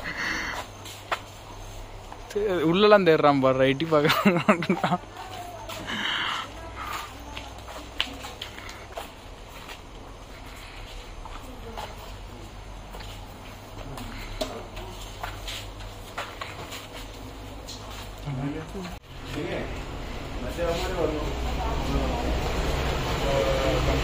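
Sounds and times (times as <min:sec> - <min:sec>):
footsteps on tiled floor: 0:00.0 - 0:02.4, 0:04.2 - 0:23.2
faint voices: 0:04.8 - 0:24.0.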